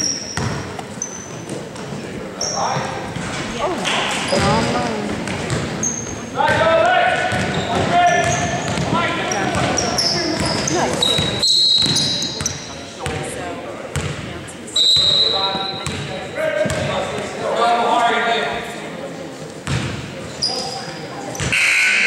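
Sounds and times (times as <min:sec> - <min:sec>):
sneakers squeaking: 0:00.0 - 0:13.3, 0:13.9 - 0:17.3, 0:19.6 - 0:22.0
voices calling out: 0:02.4 - 0:12.8
basketball dribbling: 0:04.3 - 0:13.2, 0:13.9 - 0:14.2.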